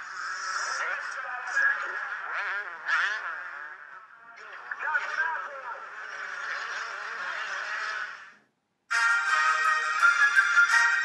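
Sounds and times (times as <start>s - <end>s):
motocross bikes racing: 0.0s - 8.4s.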